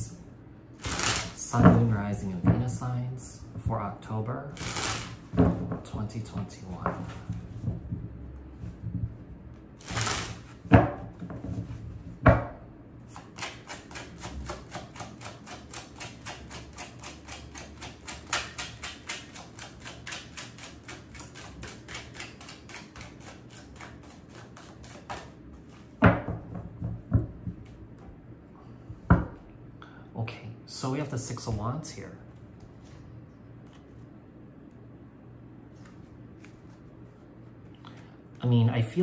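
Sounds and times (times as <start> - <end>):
cards being shuffled: 0.8 - 1.4, 4.6 - 5.2, 9.8 - 10.6, 35.7 - 36.9.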